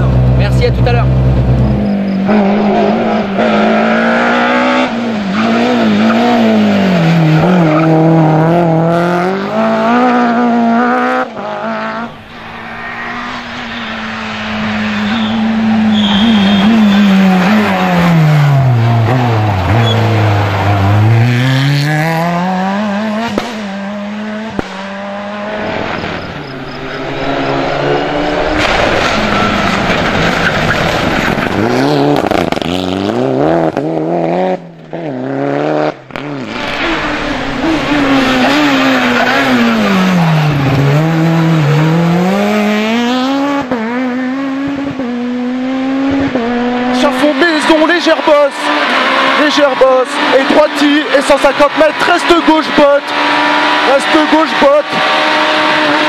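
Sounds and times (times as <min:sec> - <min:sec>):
rally car engines revving past: 0:00.0 - 0:56.0.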